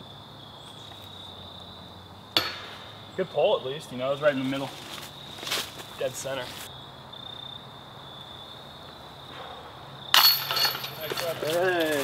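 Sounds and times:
golf disc striking basket chains: 2.4 - 2.9, 10.1 - 12.0.

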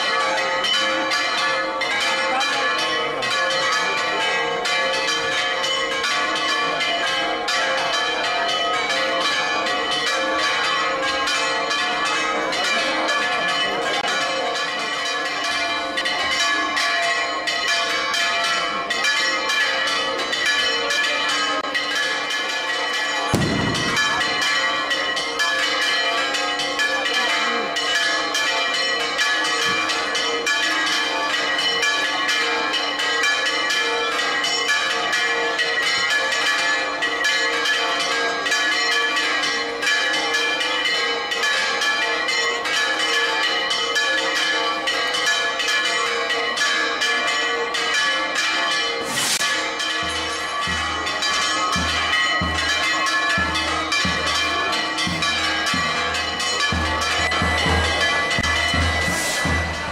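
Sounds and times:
bells ringing rapidly: 0.0 - 59.9.

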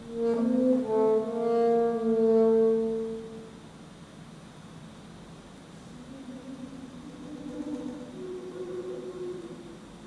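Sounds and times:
alto saxophone playing softly: 0.0 - 3.7, 5.8 - 10.0.

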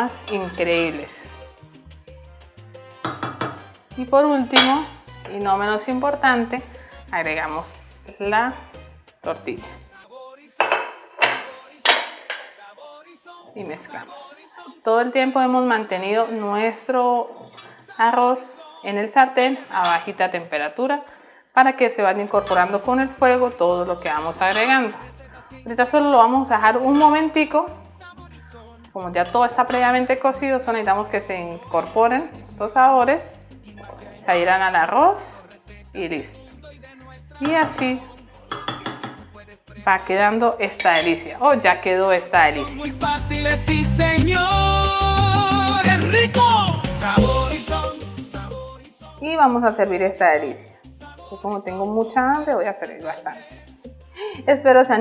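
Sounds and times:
metal spoon scraping metal pot: 0.0 - 1.6, 2.8 - 3.8, 4.4 - 5.9, 10.6 - 12.6, 16.0 - 18.0, 19.3 - 20.2, 22.2 - 35.3, 37.4 - 39.4, 40.6 - 43.2
background music with bass line: 0.0 - 10.0, 22.3 - 55.0
metal spoon clattering on pot: 3.0 - 3.7, 4.5 - 4.9, 10.6 - 12.6, 38.5 - 39.3, 40.8 - 41.2.

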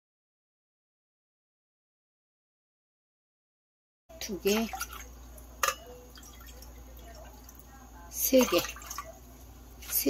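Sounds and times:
low steady hum: 4.1 - 10.0
spoon stirring water in glass pot: 4.2 - 10.0.

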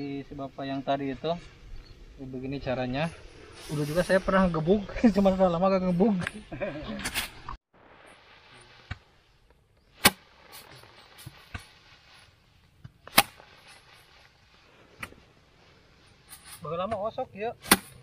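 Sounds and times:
straw rustling: 7.1 - 16.9
rice stalks thwacking wooden board: 10.0 - 11.8, 12.9 - 13.7, 17.6 - 18.0.

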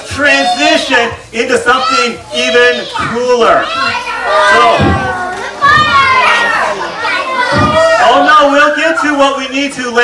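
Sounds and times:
children calling out and talking: 0.0 - 9.3.

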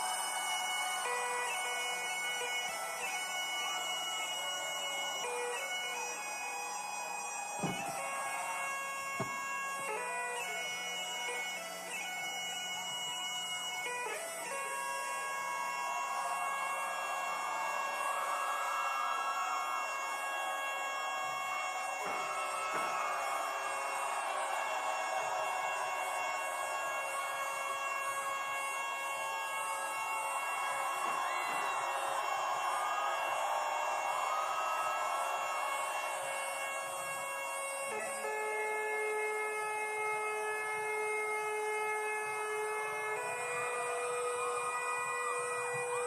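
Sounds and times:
bagpipes playing: 0.0 - 46.0
crowd noise: 0.0 - 46.0.

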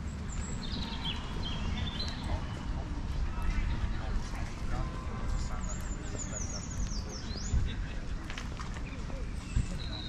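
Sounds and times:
bird chirp: 0.0 - 3.9, 5.4 - 7.8, 8.8 - 10.0
distant people talking: 0.0 - 10.0.

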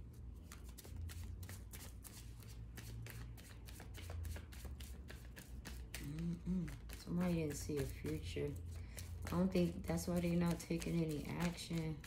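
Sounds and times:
cards being shuffled: 0.1 - 12.0.

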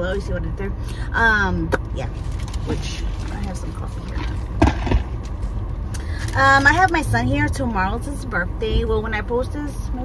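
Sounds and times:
car idling from inside cabin: 0.0 - 10.0.

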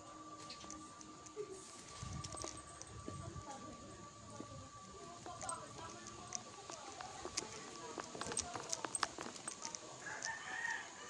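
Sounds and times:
clicking and handling noise: 0.4 - 3.7, 5.0 - 10.4
rooster crowing: 10.0 - 11.0.

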